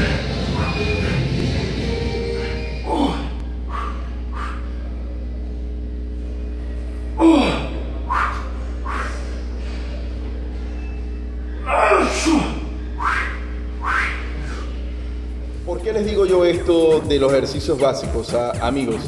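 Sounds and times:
man breathing forcefully with effort: 0.0 - 4.9, 7.2 - 10.0, 12.2 - 15.0
steady low hum: 0.0 - 19.0.

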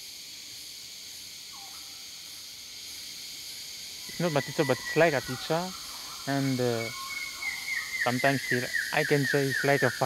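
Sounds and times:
insect chorus buzzing: 0.0 - 10.0.

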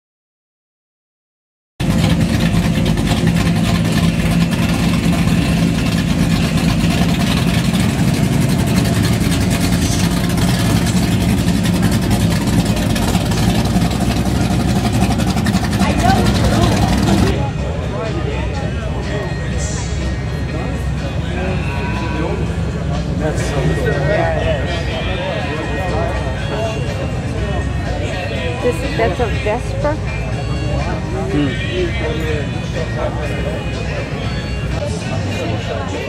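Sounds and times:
car engine droning: 1.8 - 36.0
people talking: 15.5 - 36.0.

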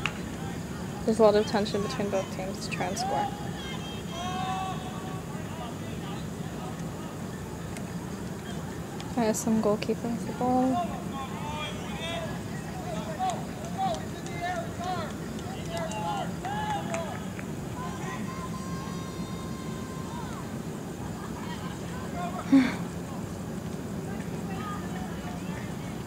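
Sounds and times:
distant voices calling out: 0.0 - 26.0.

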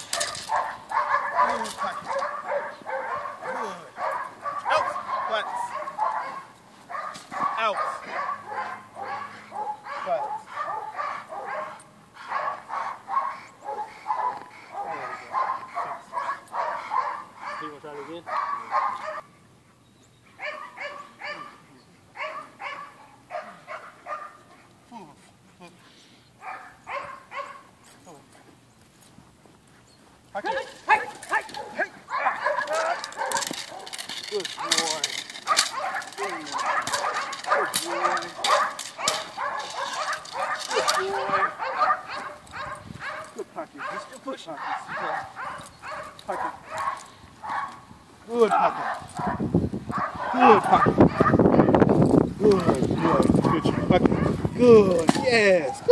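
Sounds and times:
dog barking rapidly: 0.0 - 19.3, 20.4 - 21.5, 22.2 - 24.4, 26.4 - 27.7, 30.4 - 47.8, 48.5 - 51.8, 52.5 - 54.6.

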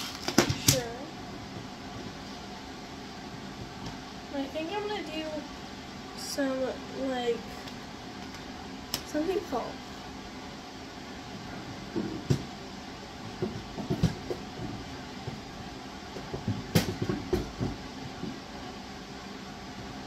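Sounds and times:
plastic cases knocking and clacking: 13.4 - 15.4, 16.2 - 18.4.

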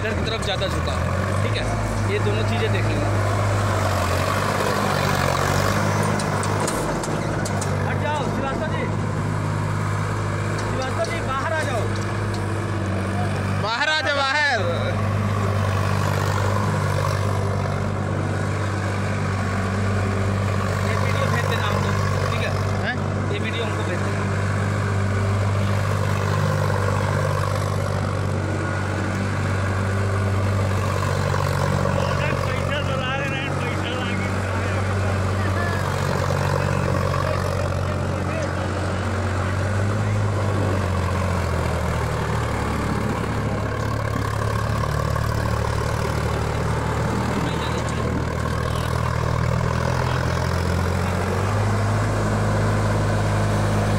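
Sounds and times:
rotavator tilling dry soil: 0.0 - 53.9
tractor diesel engine running: 0.0 - 53.9.

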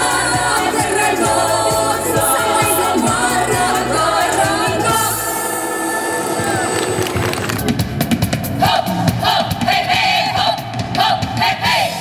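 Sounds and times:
fast rhythmic musical beat: 0.0 - 5.4
women singing folk song: 0.0 - 7.0.

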